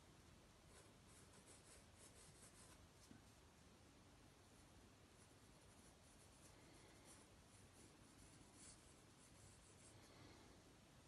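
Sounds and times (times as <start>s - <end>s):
pencil scratching on paper: 0.7s - 2.8s, 5.2s - 9.9s.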